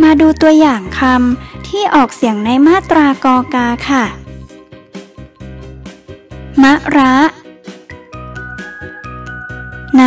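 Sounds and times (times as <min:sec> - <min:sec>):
tinkling melody: 0:07.9 - 0:10.0.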